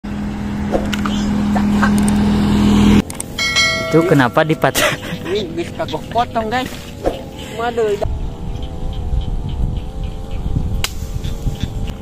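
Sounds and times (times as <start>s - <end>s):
low hum with rushing noise: 0.1s - 7.2s
bright ringing bell chime: 3.4s - 5.0s.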